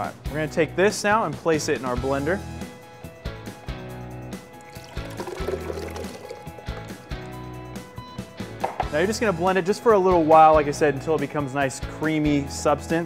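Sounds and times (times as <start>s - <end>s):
background music: 0.0s - 13.0s
liquid pouring into blender jar: 4.5s - 7.6s.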